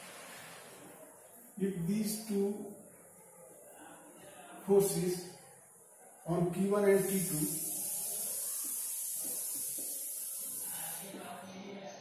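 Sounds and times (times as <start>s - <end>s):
steady high-pitched hiss: 4.6s - 12.0s
marker pen on whiteboard: 6.5s - 11.3s.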